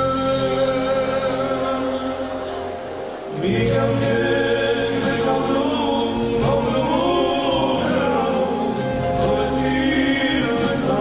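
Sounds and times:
live pop band playing: 0.0 - 11.0
man singing: 0.0 - 11.0.

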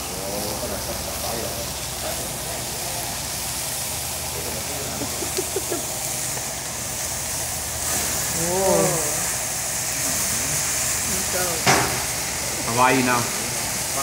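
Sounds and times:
vegetables sizzling on a griddle: 0.0 - 14.0
faint voices: 8.1 - 11.7.

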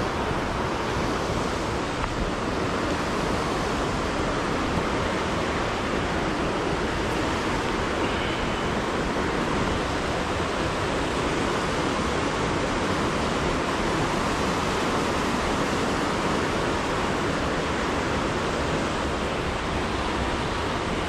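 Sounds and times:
stream rushing over rocks: 0.0 - 21.0.

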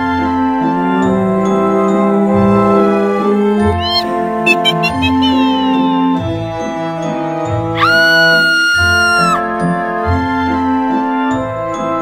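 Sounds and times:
spooky organ-like music: 0.0 - 12.0
quick high chirps: 3.8 - 5.9
rising high call: 3.8 - 6.1.

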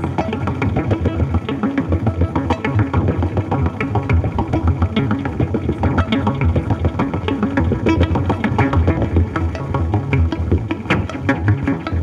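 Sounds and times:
pulsing synthesizer bass: 0.0 - 12.0.

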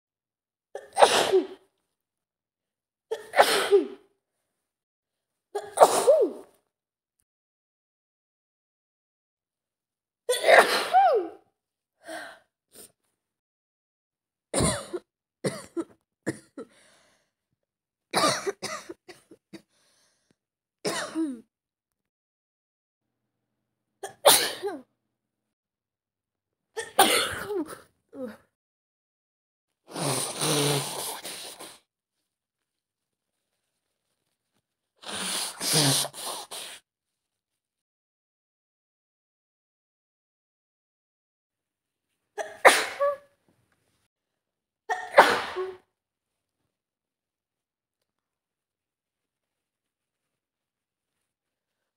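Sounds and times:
woman sneezing: 0.8 - 1.6, 3.2 - 4.0, 5.6 - 6.5, 10.3 - 11.4, 29.9 - 31.8, 35.0 - 36.8, 42.4 - 43.3, 44.9 - 45.9.

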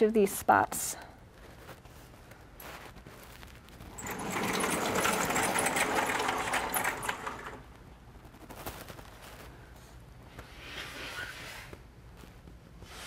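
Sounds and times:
sliding chalkboard panels rumbling: 3.8 - 7.7.

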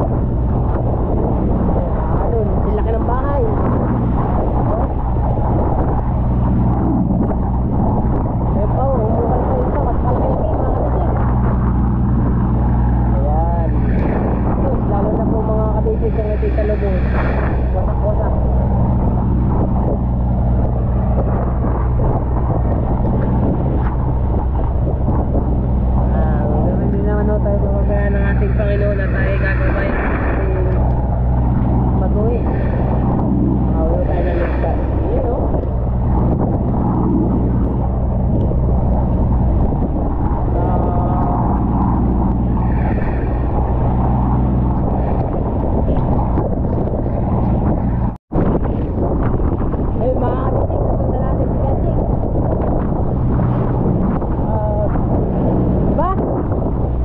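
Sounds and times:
boat engine running: 0.0 - 57.0
rough sea splashing: 0.0 - 57.0.

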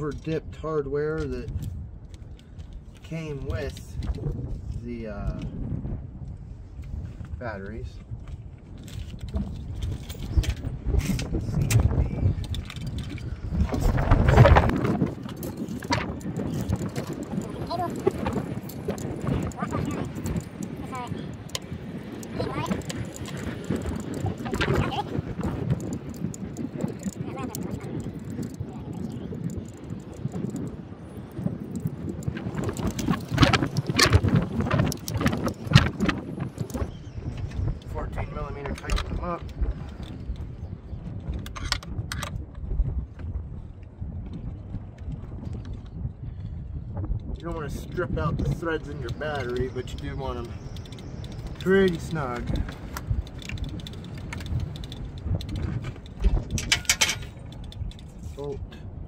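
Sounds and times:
indistinct voices: 19.3 - 20.2, 24.2 - 25.2
small metal hardware clinking: 50.8 - 58.1.

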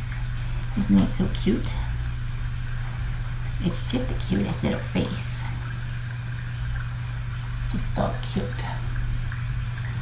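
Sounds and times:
low rumbling room noise: 0.0 - 10.0
steady low hum: 0.0 - 10.0
woman's voice: 0.8 - 1.9, 3.6 - 5.5, 7.7 - 8.8.

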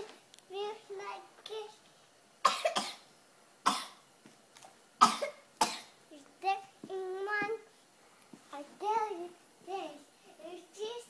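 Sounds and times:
loud coughs: 2.5 - 3.0, 3.7 - 4.0, 5.0 - 5.9
child singing: 6.1 - 7.7, 8.5 - 11.0.

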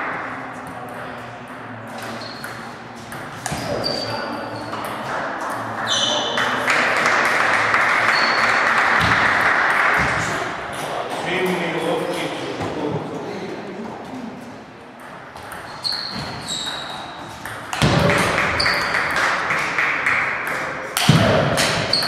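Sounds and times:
short high squeaks: 3.6 - 4.8, 15.7 - 17.2
table tennis balls clicking: 16.6 - 22.0.

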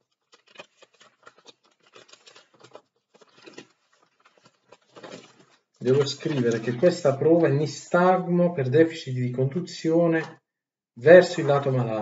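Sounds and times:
paper notes rustling: 0.0 - 8.2, 11.1 - 12.0.

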